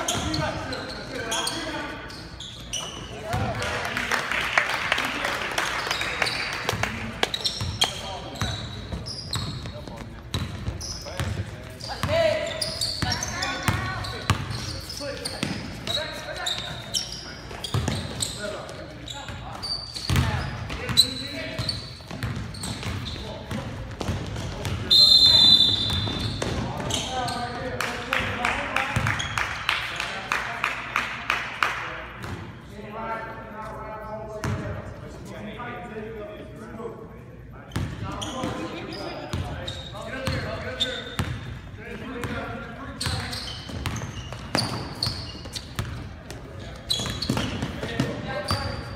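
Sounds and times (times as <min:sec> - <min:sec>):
sneakers squeaking: 0:00.0 - 0:03.7, 0:05.6 - 0:27.8, 0:28.8 - 0:29.7, 0:37.6 - 0:48.9
basketball bouncing on court: 0:07.4 - 0:12.4, 0:13.0 - 0:14.6, 0:17.5 - 0:18.3, 0:19.3 - 0:24.9, 0:25.7 - 0:27.1, 0:29.0 - 0:29.3, 0:41.2 - 0:41.6, 0:42.2 - 0:48.9
referee's whistle: 0:24.9 - 0:26.4.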